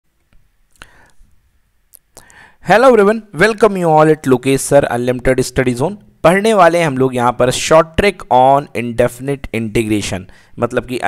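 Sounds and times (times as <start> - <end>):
soft breathy noise: 0.7 - 1.5, 2.1 - 2.7, 10.3 - 10.6.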